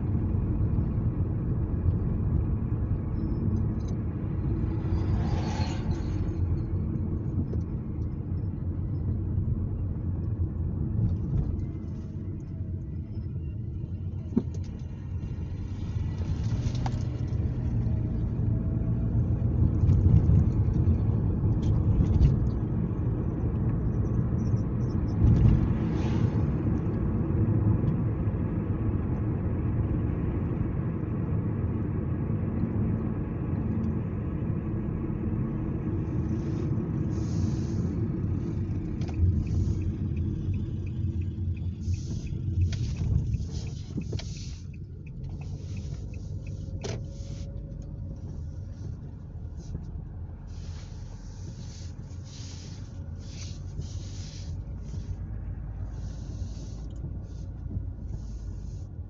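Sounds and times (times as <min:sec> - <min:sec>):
car road and engine rumble: 0:00.0 - 0:59.0.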